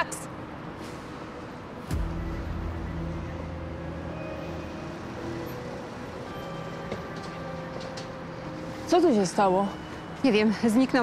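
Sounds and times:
city street rumble: 0.0s - 11.0s.

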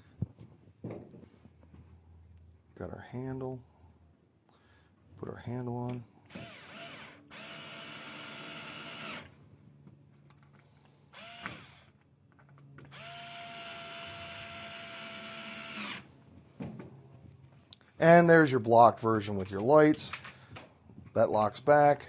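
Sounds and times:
cordless screwdriver motor whine: 6.3s - 9.3s, 11.2s - 12.0s, 12.8s - 16.1s.

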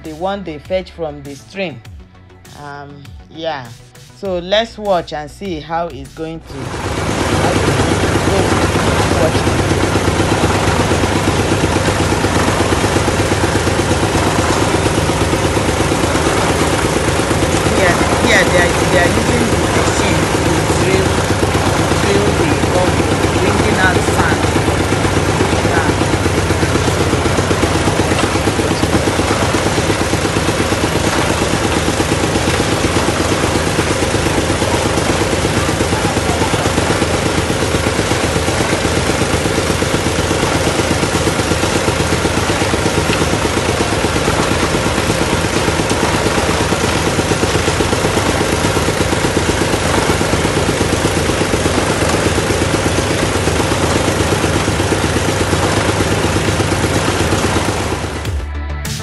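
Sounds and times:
drilling rig engine running: 0.0s - 59.0s.

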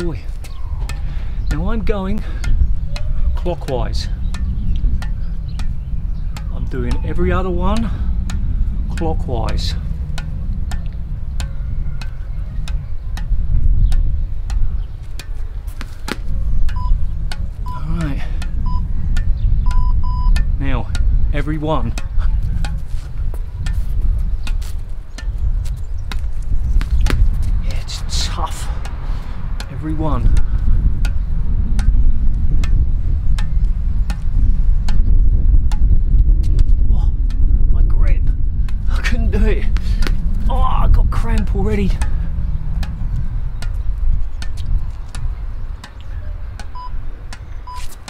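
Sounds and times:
ball tapping racket strings: 0.0s - 37.6s, 38.6s - 48.0s
wind on microphone: 0.0s - 48.0s
timer beeps: 16.7s - 17.0s, 18.6s - 18.9s, 19.6s - 20.5s, 46.7s - 47.0s.

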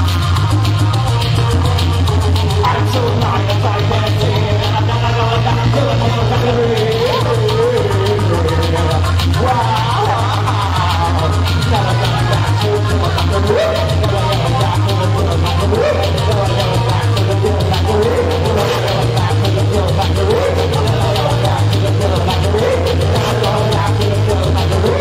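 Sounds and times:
regular beat: 0.0s - 25.0s
synth bass line: 0.0s - 25.0s.

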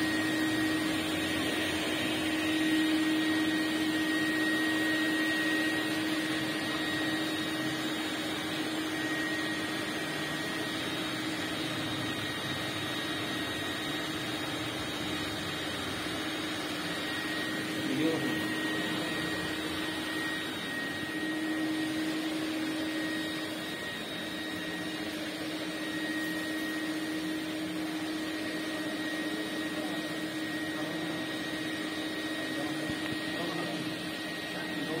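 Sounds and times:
floor wand on carpet: 0.0s - 34.8s
vacuum cleaner running: 0.0s - 35.0s.

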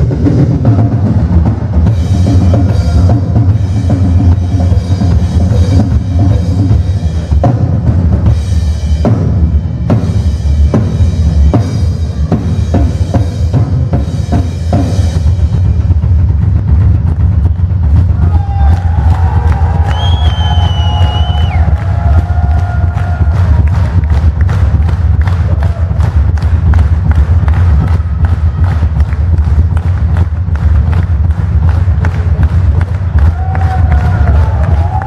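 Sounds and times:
drum kit solo: 0.0s - 24.0s
heavy kick drum: 0.0s - 35.0s
crowd cheering: 1.1s - 3.6s, 17.8s - 35.0s
whistle from crowd: 19.8s - 21.7s.

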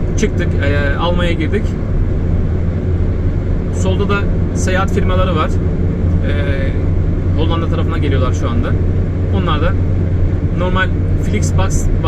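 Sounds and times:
car interior road noise: 0.0s - 12.0s.

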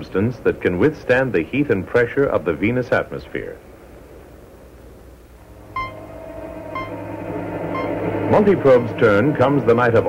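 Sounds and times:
low steady drone: 3.8s - 10.0s
short electronic beeps: 5.8s - 6.1s, 6.8s - 7.0s, 7.7s - 8.0s.

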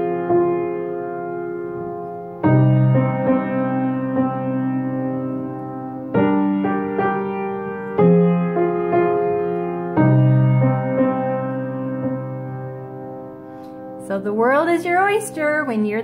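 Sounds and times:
slow blues piano chords: 0.0s - 15.8s.

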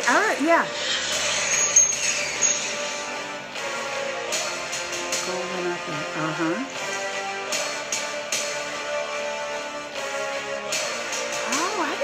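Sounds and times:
high-pitched whistling tones: 0.7s - 3.6s
sharp hit: 0.7s - 3.8s.

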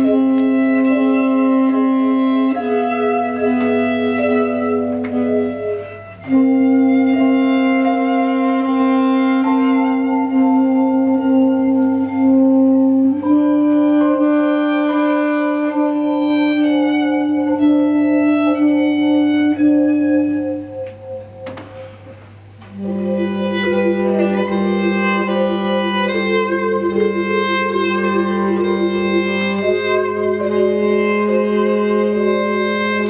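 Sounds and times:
jazz trio playing: 0.0s - 33.0s.

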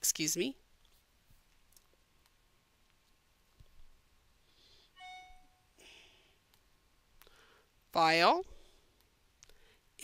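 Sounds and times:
electronic alert chime: 5.0s - 5.6s.

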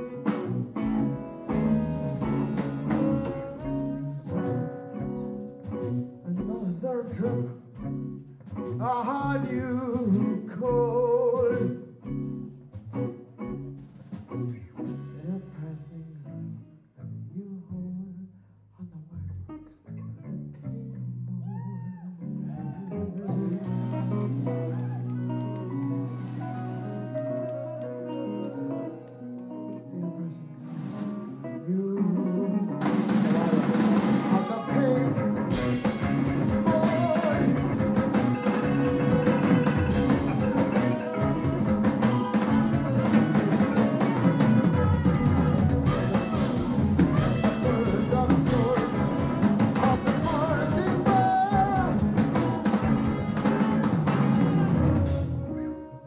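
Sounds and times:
person singing: 0.0s - 5.1s, 6.2s - 7.9s, 8.6s - 12.0s, 14.6s - 54.5s
live rock band playing: 0.0s - 16.7s, 22.5s - 56.0s.

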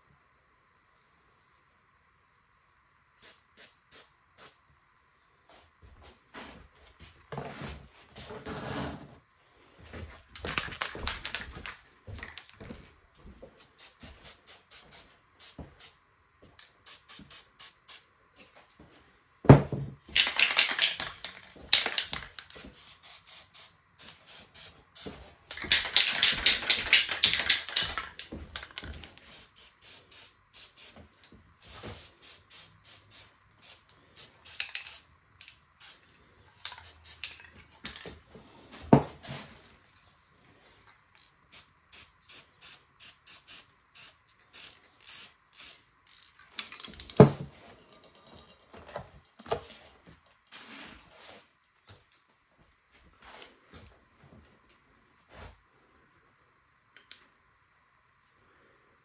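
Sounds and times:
spray can hissing: 3.2s - 4.6s, 13.6s - 16.0s, 16.8s - 18.1s, 21.7s - 28.1s, 29.2s - 35.1s, 35.7s - 36.0s, 36.6s - 37.4s, 41.5s - 45.8s
spray can mixing ball rattling: 10.4s - 12.6s, 20.1s - 35.1s, 36.6s - 38.0s.

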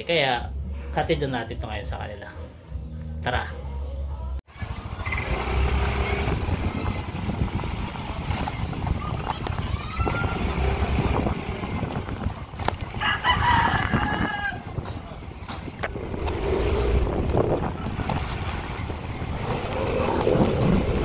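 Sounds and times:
street noise: 0.0s - 21.0s
rooster crowing: 13.0s - 14.7s.

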